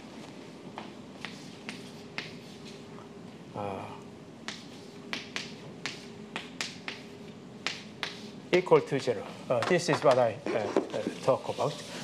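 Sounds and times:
chalk tapping and scraping on blackboard: 0:01.2 - 0:02.8, 0:04.4 - 0:08.4.

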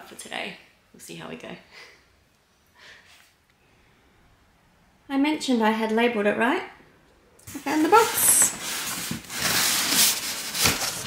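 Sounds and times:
cardboard flaps scraping: 0:07.5 - 0:11.0
cardboard cracking: 0:07.6 - 0:11.0.

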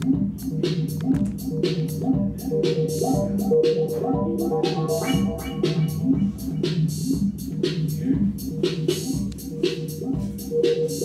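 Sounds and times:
low synth bass pattern: 0:00.0 - 0:10.4
steady synth tone: 0:02.2 - 0:07.4.

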